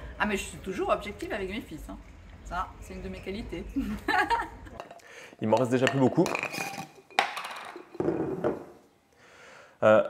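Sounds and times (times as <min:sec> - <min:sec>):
biscuits clattering in glass jar: 0:04.8 - 0:08.6
glass jar knocking: 0:04.8 - 0:08.8.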